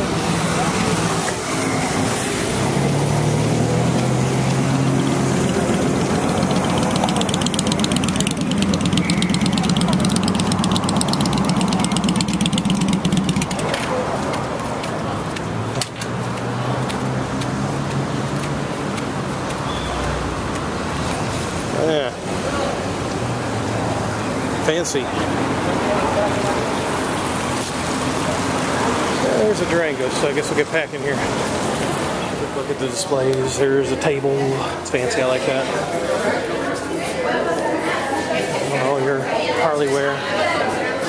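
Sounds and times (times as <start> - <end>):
motorcycle engines running: 0.0 - 35.8
steady traffic hum: 0.0 - 41.0.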